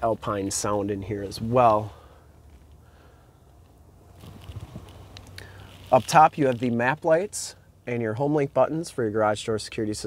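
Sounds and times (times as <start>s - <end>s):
low steady hum: 0.0s - 10.0s
faint rustles: 1.5s - 6.9s
small clicks: 3.6s - 6.7s.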